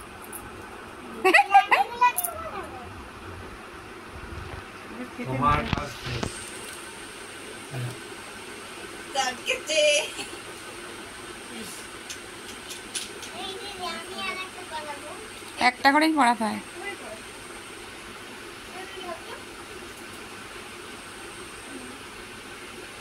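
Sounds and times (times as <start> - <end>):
children's voices: 13.3 - 15.2.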